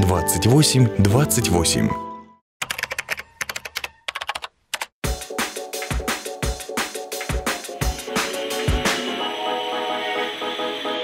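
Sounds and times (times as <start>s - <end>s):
computer keyboard typing: 2.6s - 5.0s
electronic music with strong beat: 5.0s - 9.3s.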